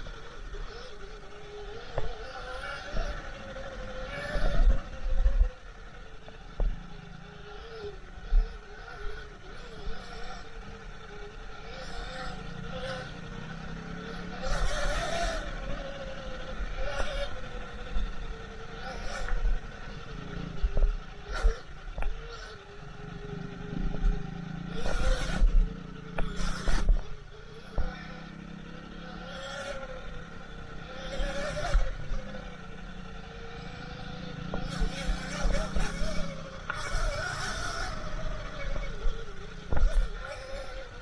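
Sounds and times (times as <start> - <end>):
electric dirt bike motor whine: 0.0 - 41.0.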